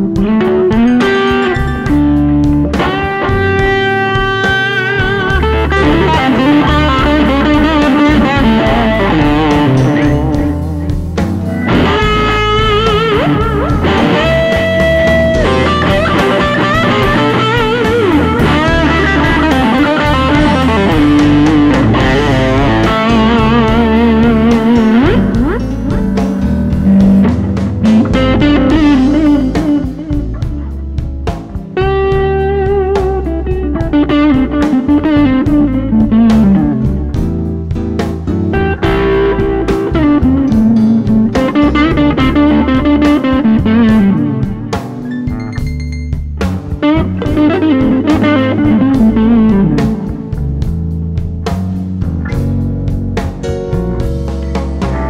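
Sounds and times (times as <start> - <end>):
band playing: 0.0 - 55.0
electric guitar lead notes: 0.0 - 55.0.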